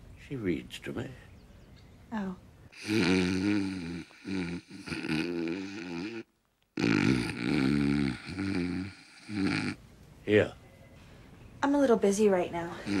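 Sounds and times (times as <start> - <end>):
man snoring loudly: 2.8 - 9.8.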